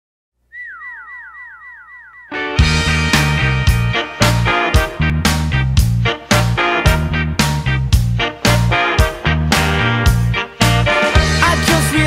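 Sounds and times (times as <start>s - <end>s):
falling whistle-like tones: 0.5s - 3.5s.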